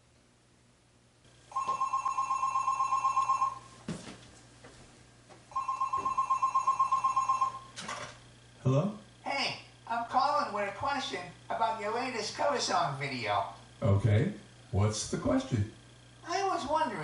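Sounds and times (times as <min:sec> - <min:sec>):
telephone ringing: 0:01.5 - 0:03.8, 0:05.5 - 0:08.0.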